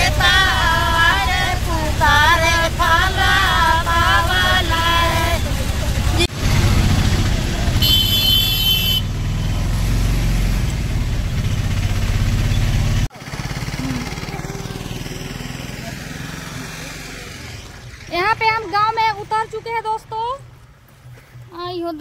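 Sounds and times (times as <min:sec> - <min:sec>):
auto-rickshaw engine running: 0:00.0 - 0:20.6
vehicle horn: 0:02.9 - 0:05.9, 0:06.9 - 0:09.7.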